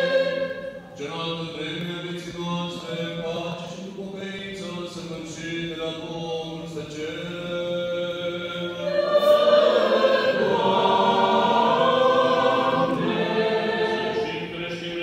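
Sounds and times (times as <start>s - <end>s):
choir chanting a cappella: 0.0s - 15.0s.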